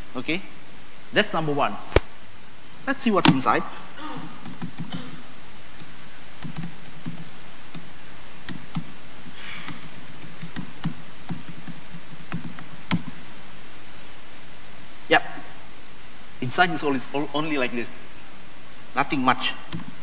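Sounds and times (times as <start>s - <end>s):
steady hiss: 0.0s - 20.0s
laptop keyboard keys clicking: 4.4s - 5.0s, 5.8s - 7.9s, 8.5s - 13.1s.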